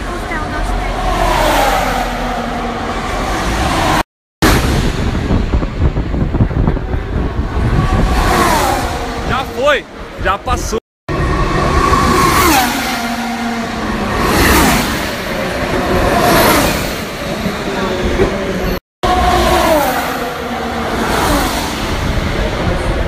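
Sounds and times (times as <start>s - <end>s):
race cars passing at speed: 0.0s - 23.0s.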